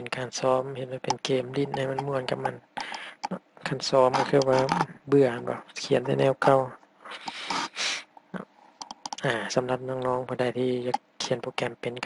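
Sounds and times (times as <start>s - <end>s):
man breathing noisily: 2.8s - 3.3s, 7.1s - 8.1s
mouth clicks: 2.8s - 3.4s, 7.1s - 9.3s.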